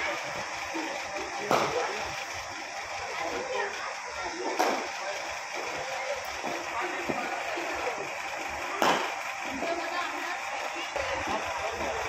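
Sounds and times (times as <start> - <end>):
low voices: 0.0 - 12.0.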